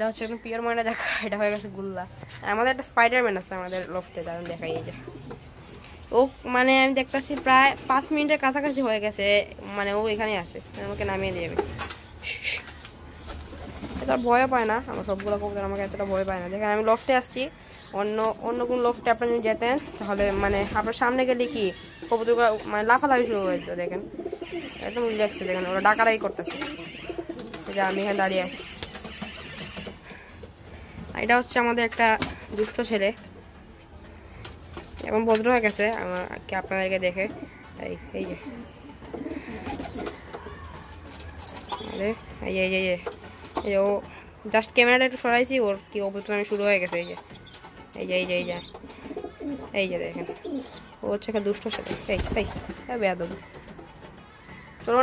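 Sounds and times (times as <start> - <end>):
pigeons cooing: 13.4 - 33.1, 34.2 - 44.4, 46.4 - 54.8.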